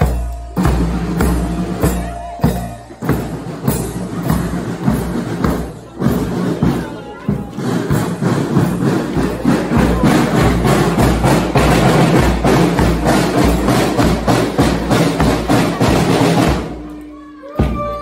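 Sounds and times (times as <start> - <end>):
drum band marching beat: 0.0 - 16.9.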